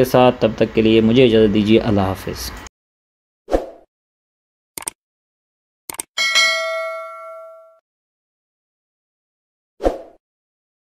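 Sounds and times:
mouse double click: 0:04.8 - 0:05.0, 0:05.9 - 0:06.1
bright bell ding: 0:06.2 - 0:07.8.

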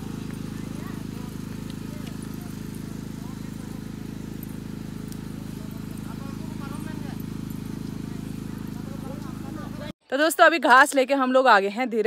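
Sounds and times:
power lines buzzing: 0:00.0 - 0:10.0
faint distant voices: 0:00.3 - 0:09.9.

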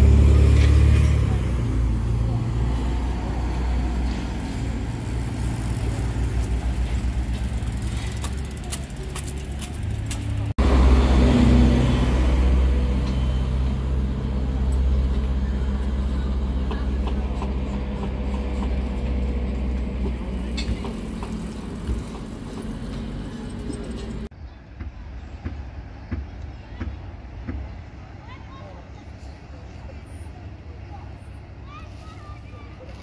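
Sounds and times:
heavy vehicle engine humming: 0:00.0 - 0:24.3
outdoor background noise: 0:00.0 - 0:33.0
traffic: 0:00.0 - 0:33.0.

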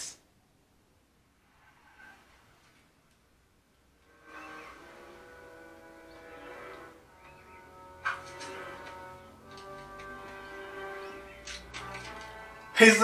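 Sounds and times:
faint music with held notes: 0:03.8 - 0:13.0.

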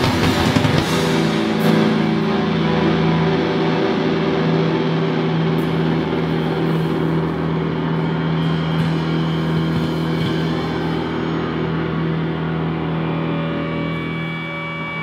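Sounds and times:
amp noise: 0:00.0 - 0:15.0
electric guitars droning: 0:00.0 - 0:15.0.

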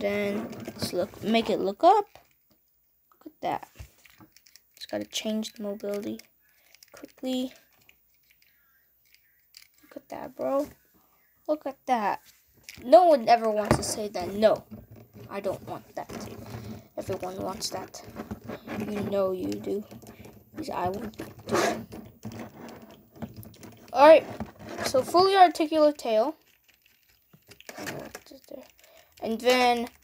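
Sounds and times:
person speaking: 0:00.0 - 0:02.3, 0:03.1 - 0:03.9, 0:04.7 - 0:07.8, 0:09.7 - 0:22.0, 0:23.9 - 0:26.4, 0:27.7 - 0:30.0
plastic figure clicking and rubbing: 0:00.0 - 0:02.8, 0:03.4 - 0:10.7, 0:12.6 - 0:30.0.

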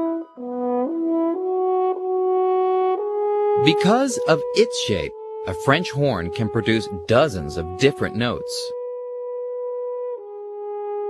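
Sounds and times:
french horn held notes: 0:00.0 - 0:08.8.

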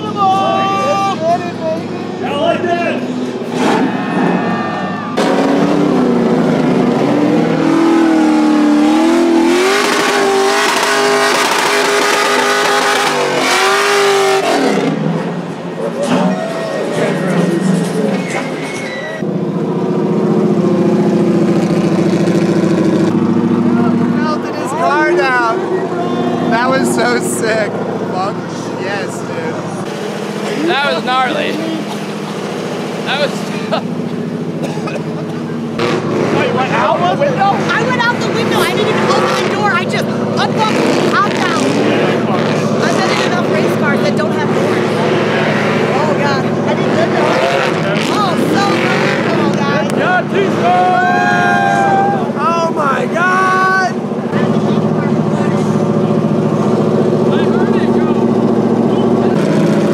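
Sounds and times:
people shouting and cheering: 0:00.0 - 0:06.2, 0:15.5 - 0:19.2, 0:23.7 - 0:29.8, 0:36.3 - 0:56.0
vehicle engine running: 0:00.0 - 0:18.4, 0:19.2 - 0:59.9.

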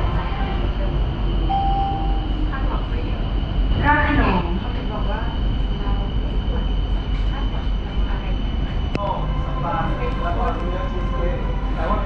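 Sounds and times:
train high whine: 0:00.0 - 0:12.0
train low rumble: 0:00.0 - 0:12.0.

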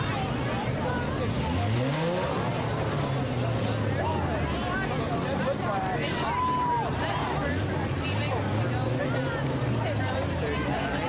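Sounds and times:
race car engine revving: 0:00.0 - 0:06.1, 0:06.9 - 0:11.0
people talking: 0:00.0 - 0:11.0.

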